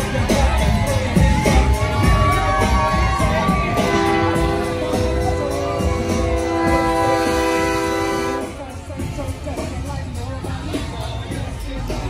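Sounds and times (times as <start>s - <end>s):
multi-tone horn blast: 3.4s - 8.8s.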